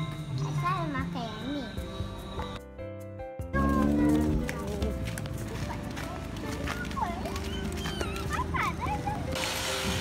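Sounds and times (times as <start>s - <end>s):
children squealing excitedly: 7.3s - 9.1s.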